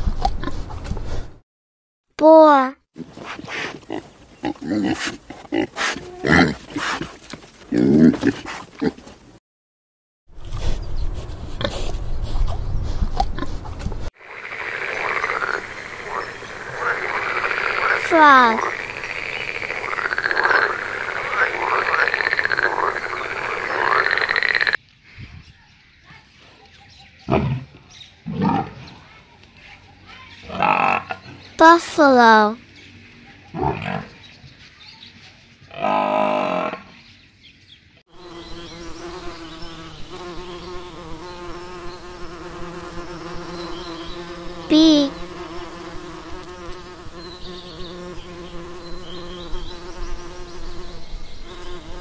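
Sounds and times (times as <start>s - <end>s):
bee buzzing: 14.2s - 24.8s, 38.1s - 52.0s
frogs croaking: 14.2s - 24.8s.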